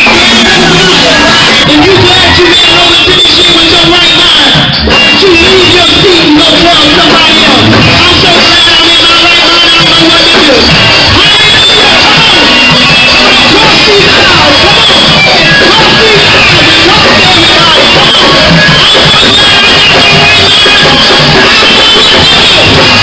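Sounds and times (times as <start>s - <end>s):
church praise band music: 0.0s - 23.0s
guitar: 0.0s - 23.0s
voices singing: 0.0s - 23.0s.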